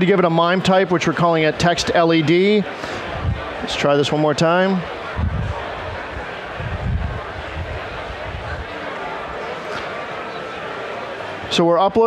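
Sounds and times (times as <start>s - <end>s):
wind gusts on microphone: 3.0s - 3.6s, 5.0s - 8.7s.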